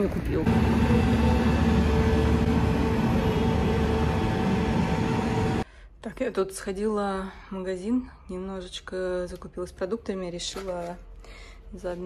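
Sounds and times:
vehicle engine rumble: 0.0s - 5.6s.

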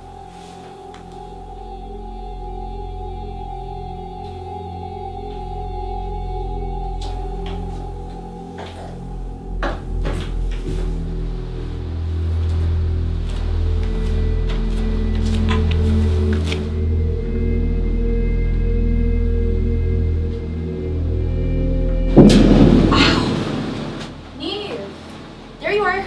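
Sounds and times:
low horror drone: 0.0s - 26.0s.

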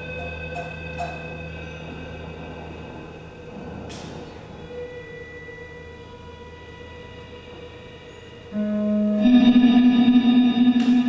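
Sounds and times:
echoing electric guitars: 8.5s - 11.0s.

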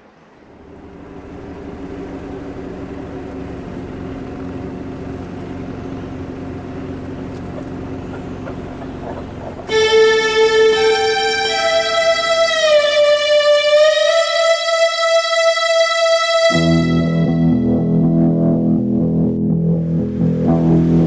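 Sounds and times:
car engine driving: 0.0s - 21.0s
music: 9.7s - 21.0s.

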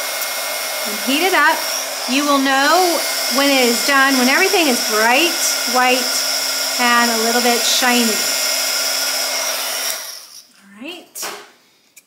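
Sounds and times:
heat tool blower: 0.0s - 10.5s.

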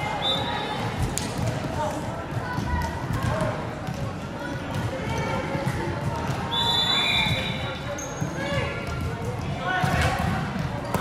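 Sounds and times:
players' voices and calls: 0.0s - 11.0s.

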